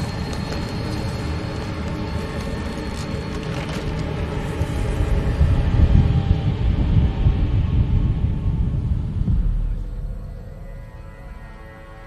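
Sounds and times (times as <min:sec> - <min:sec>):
deep rumbling drone: 0:00.0 - 0:12.0.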